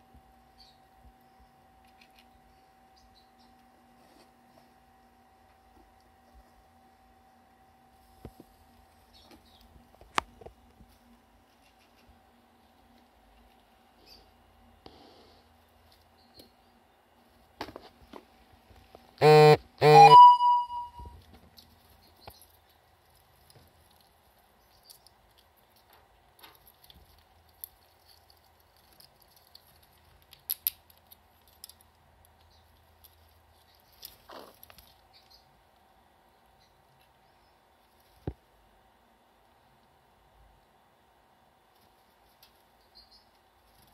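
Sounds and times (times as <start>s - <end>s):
brief high tone: 19.2s - 21.2s
squirrel scratching in soil: 33.2s - 35.2s.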